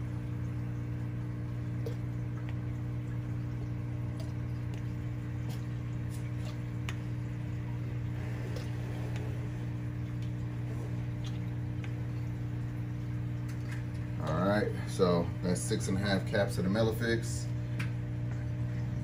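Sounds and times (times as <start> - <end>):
liquid dripping and splashing: 0.0 - 14.6, 17.5 - 19.0
aquarium pump humming: 0.0 - 19.0.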